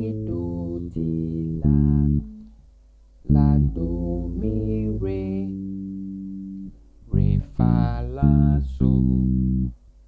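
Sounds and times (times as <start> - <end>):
electric bass guitar plucked notes: 0.0 - 2.6, 3.2 - 9.8.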